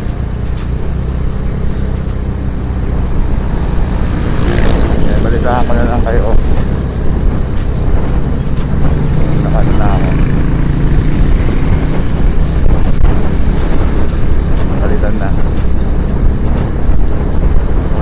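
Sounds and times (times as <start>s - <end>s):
scooter engine running: 0.0s - 18.0s
wind rushing over microphone: 1.4s - 18.0s.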